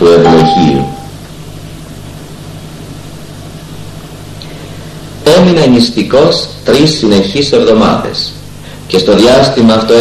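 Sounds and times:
low hum: 0:00.0 - 0:05.2.

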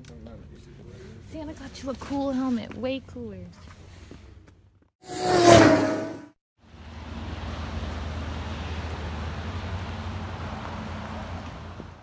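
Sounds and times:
vehicle noise hum and hiss: 0:06.6 - 0:12.0.

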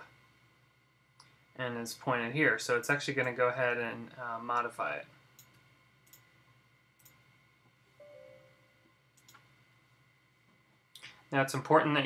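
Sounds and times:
computer mouse click: 0:05.4 - 0:06.3, 0:07.0 - 0:07.2, 0:09.2 - 0:09.5
faint short tone: 0:08.0 - 0:08.8.

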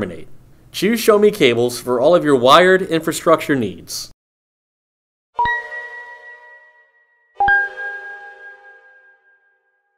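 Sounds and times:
bell-like chime notes: 0:05.4 - 0:09.9.

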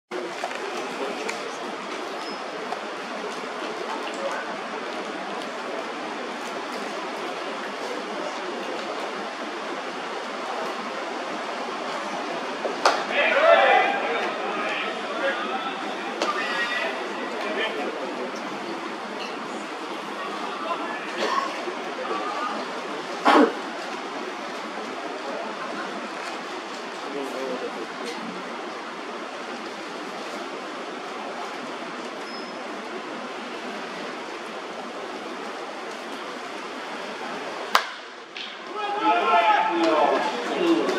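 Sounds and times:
crowd chatter: 0:00.1 - 0:40.9
crowd shouting: 0:12.9 - 0:17.9, 0:20.1 - 0:23.0, 0:37.7 - 0:40.9
bat hitting ball crack: 0:37.7 - 0:38.7.

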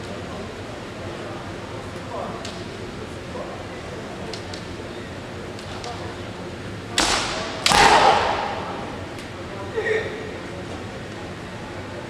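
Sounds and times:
bamboo sword striking armour: 0:07.0 - 0:08.6
people shouting: 0:07.6 - 0:08.9.

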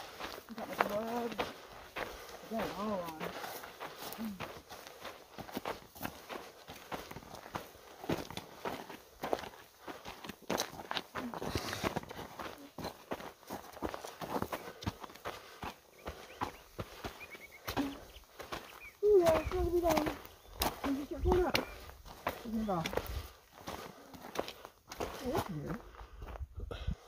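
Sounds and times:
footsteps on dirt trail: 0:00.0 - 0:27.0.

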